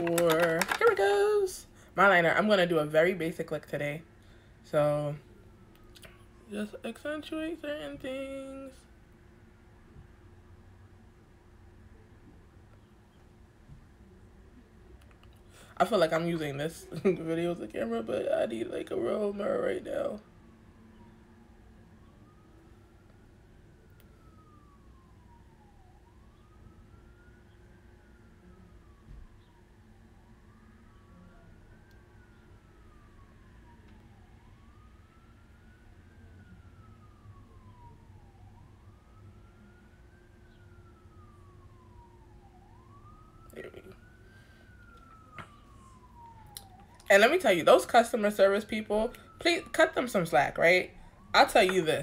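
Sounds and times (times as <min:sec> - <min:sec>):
faint emergency siren wailing: 0:00.0 - 0:52.0
low steady hum: 0:00.0 - 0:52.0.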